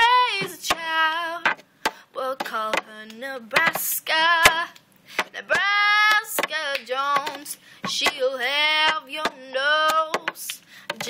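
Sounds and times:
girl singing unaccompanied: 0:00.0 - 0:11.0.

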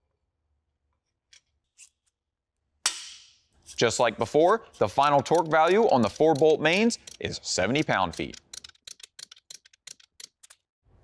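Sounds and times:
ratchet clicking: 0:04.7 - 0:10.6.

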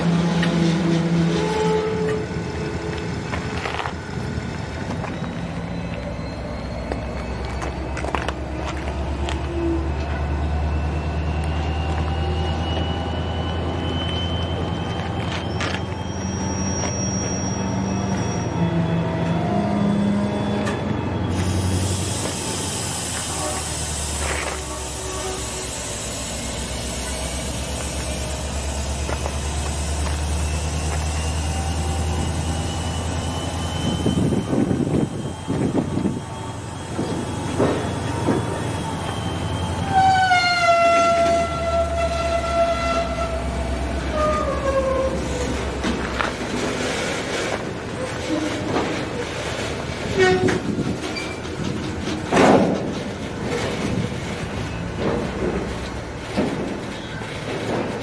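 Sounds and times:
steel wheels squealing: 0:00.0 - 0:04.0, 0:04.7 - 0:58.0
freight cars rumbling on rails: 0:00.0 - 0:58.0.

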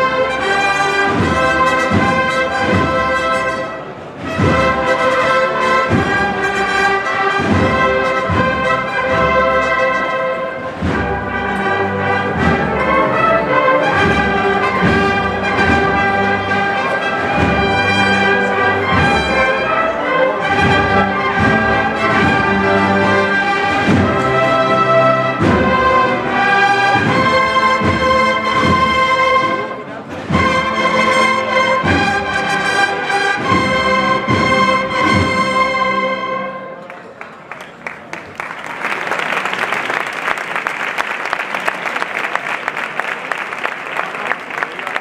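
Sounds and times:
brass band playing a march: 0:00.0 - 0:36.9
steady drum beat: 0:01.0 - 0:03.6, 0:04.3 - 0:09.8, 0:10.7 - 0:29.5.

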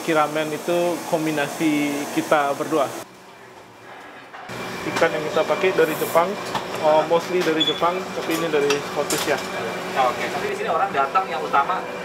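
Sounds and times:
restaurant kitchen hum: 0:00.0 - 0:12.0.

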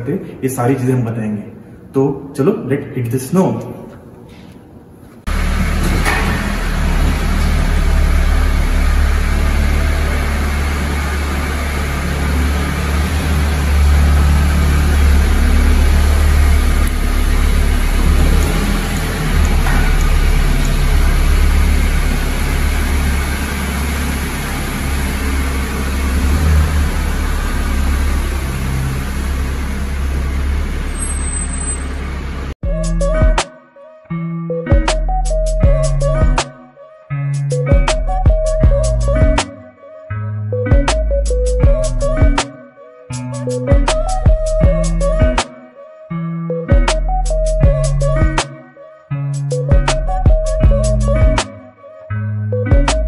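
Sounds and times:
car engine running: 0:05.3 - 0:32.6.

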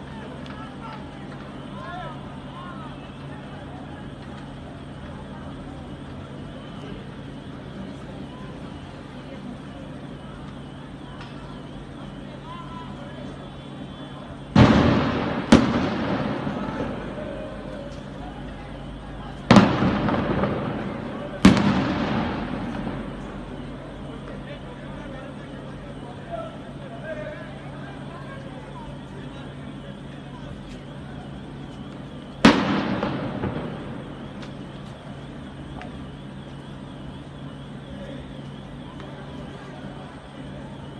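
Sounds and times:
explosive bangs with echo: 0:14.6 - 0:17.7, 0:19.5 - 0:24.2, 0:32.4 - 0:34.8.

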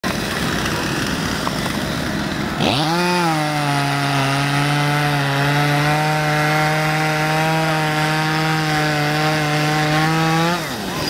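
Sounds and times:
chainsaw engines idling: 0:00.0 - 0:11.0.

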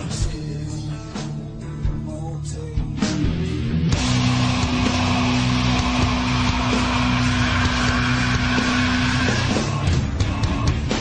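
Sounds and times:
distorted electric guitars: 0:00.0 - 0:11.0
drums: 0:00.0 - 0:11.0.

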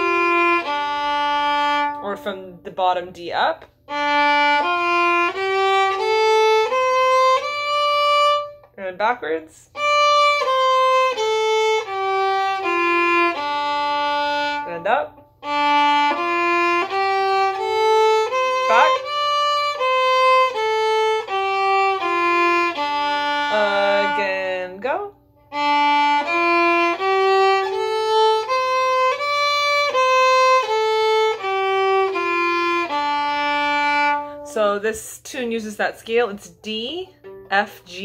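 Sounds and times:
fiddle playing slow scale: 0:00.0 - 0:02.2, 0:03.8 - 0:08.8, 0:09.7 - 0:34.8, 0:37.2 - 0:38.0.

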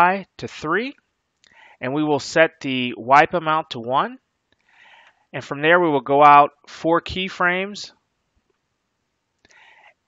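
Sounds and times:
faint breath: 0:01.4 - 0:01.8, 0:04.6 - 0:05.3, 0:09.4 - 0:10.0.

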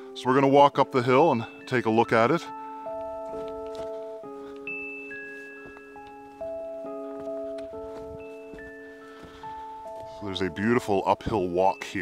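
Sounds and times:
slow bell-like melody: 0:00.0 - 0:12.0.

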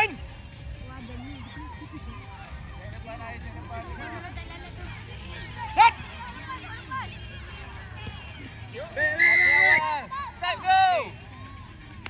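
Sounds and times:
players shouting: 0:01.1 - 0:12.0
referee's whistle blast: 0:09.0 - 0:10.0.

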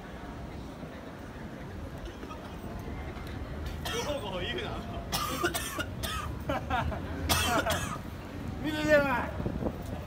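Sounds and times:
city traffic rumble: 0:00.0 - 0:10.0
passersby talking: 0:00.0 - 0:10.0.

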